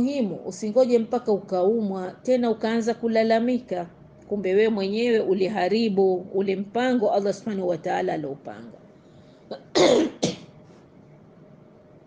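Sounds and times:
woman coughing: 9.5 - 10.5.

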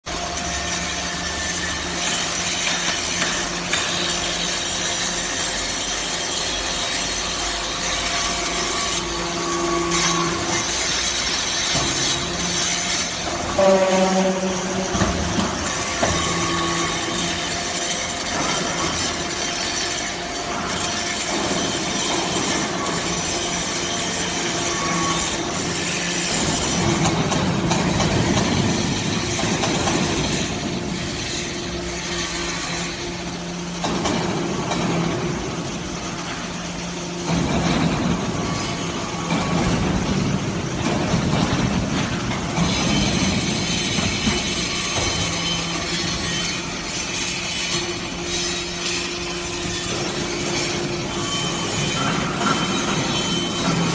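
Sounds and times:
dense mechanical noise: 0.0 - 53.9
steady motor hum: 0.1 - 53.9.

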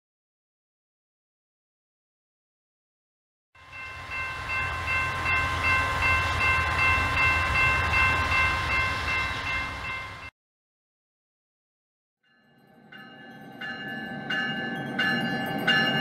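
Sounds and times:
low train rumble: 3.6 - 10.3
train horn chord: 3.6 - 10.3.

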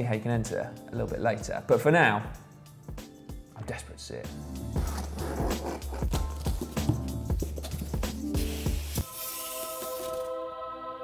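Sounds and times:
background music with steady beat: 0.0 - 11.0
cardboard box scraping and rustling: 4.8 - 6.8.

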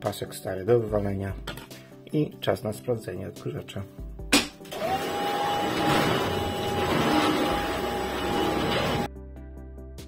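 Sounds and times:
vacuum cleaner motor whine: 4.7 - 9.1.

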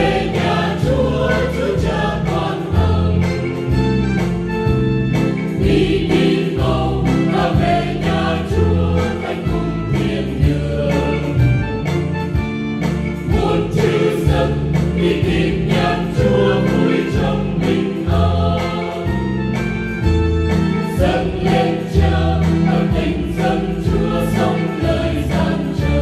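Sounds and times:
choir singing a hymn: 0.0 - 4.3, 5.2 - 26.0
musical accompaniment: 0.0 - 26.0.

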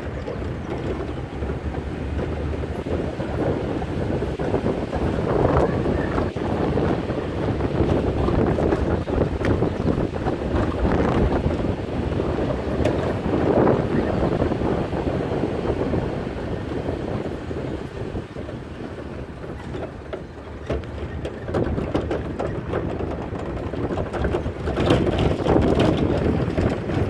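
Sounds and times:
knocks and rattles: 0.0 - 14.4, 18.3 - 27.0
pickup truck rumbling on dirt road: 0.0 - 27.0
wind buffeting microphone: 0.0 - 27.0.

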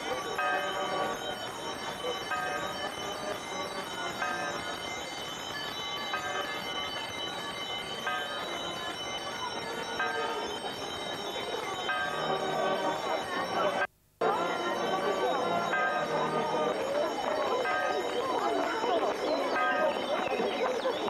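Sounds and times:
bells ringing: 0.0 - 21.0
crowd hubbub: 0.0 - 21.0.

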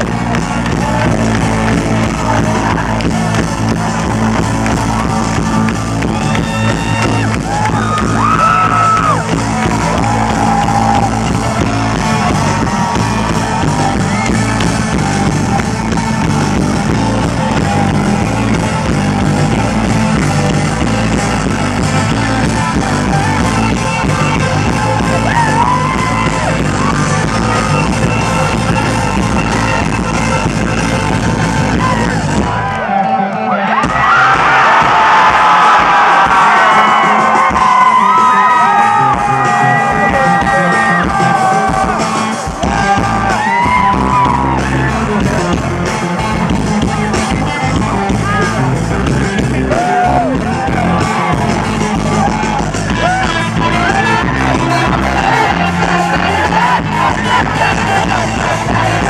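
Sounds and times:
live rock band: 0.0 - 59.0
person singing: 37.0 - 59.0.

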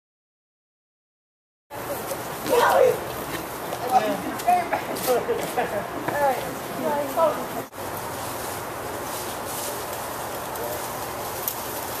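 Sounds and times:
outdoor hiss: 1.7 - 12.0.

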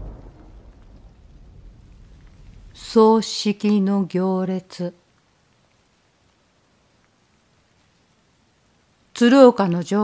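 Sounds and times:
low thunder rumble: 0.0 - 3.4
rain hissing: 0.0 - 10.0.

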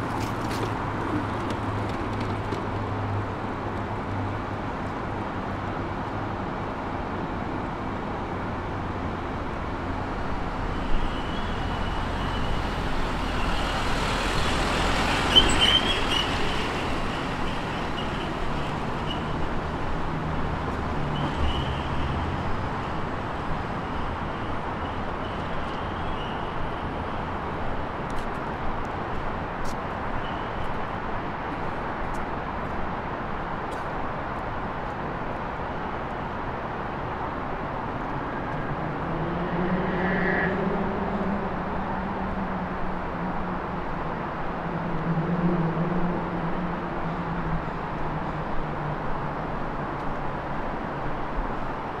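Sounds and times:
street traffic hum: 0.0 - 52.0
vehicle passing: 11.6 - 19.0.

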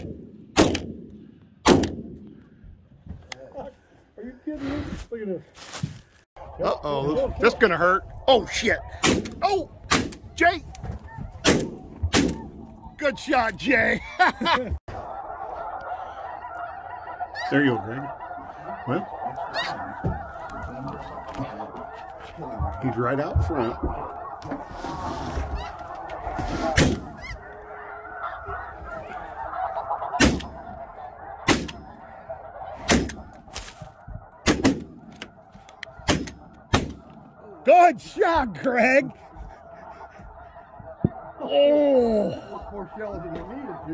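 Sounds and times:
shotgun shots: 0.0 - 2.2, 34.4 - 35.0
geese honking: 0.0 - 43.9
goose calling: 0.0 - 43.9.

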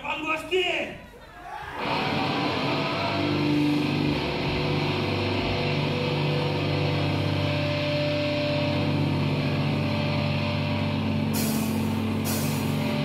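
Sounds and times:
amplified guitars droning: 1.7 - 13.0.

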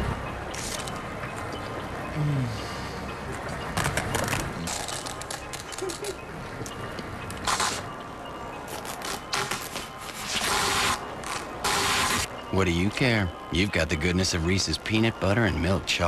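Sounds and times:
short bursts of noise: 0.5 - 1.0, 7.4 - 7.9, 8.7 - 12.3.

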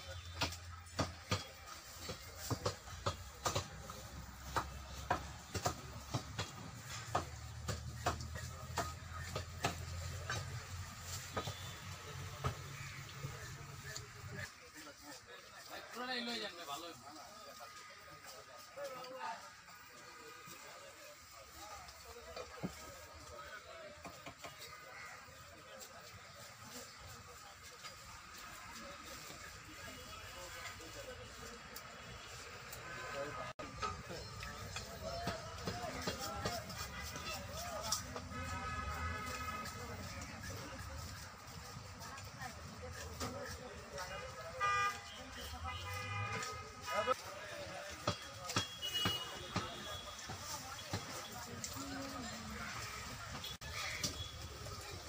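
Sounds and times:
background voices talking: 0.0 - 55.0
vehicle horns honking: 11.2 - 12.0, 36.8 - 40.6, 44.0 - 47.2, 48.2 - 51.2.

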